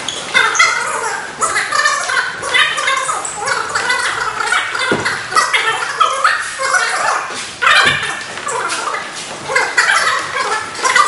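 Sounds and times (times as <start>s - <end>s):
short thud: 4.9s - 5.3s.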